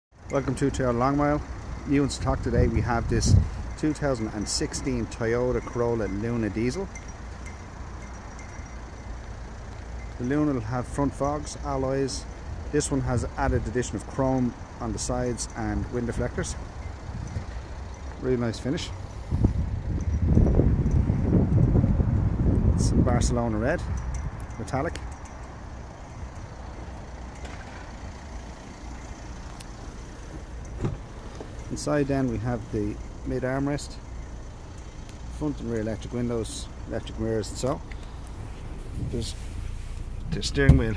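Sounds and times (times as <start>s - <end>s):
outdoor background rumble: 0.1s - 40.9s
faint ticks: 9.6s - 10.2s, 29.4s - 31.7s, 34.2s - 36.0s, 37.8s - 38.4s
faint hiss: 37.8s - 40.9s.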